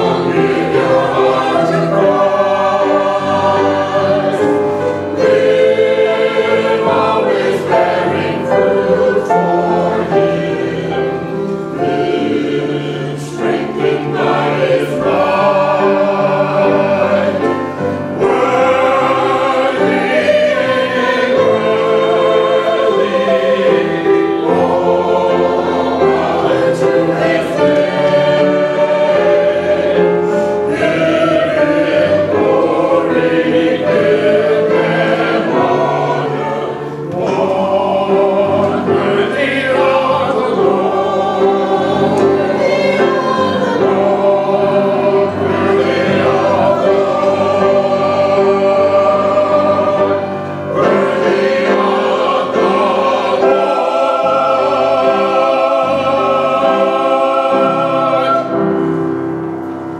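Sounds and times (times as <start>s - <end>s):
choir singing: 0.0s - 59.9s.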